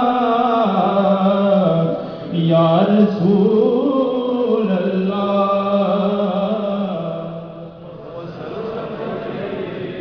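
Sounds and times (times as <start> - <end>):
man singing into a microphone: 0.0 - 8.3.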